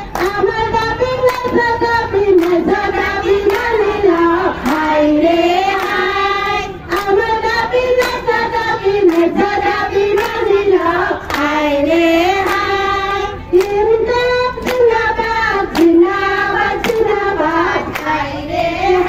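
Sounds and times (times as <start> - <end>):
hands clapping in time: 0.0 - 1.7, 2.4 - 2.8, 3.4 - 4.9, 5.7 - 13.8, 14.5 - 15.0, 15.6 - 18.2
women singing together: 0.0 - 19.0.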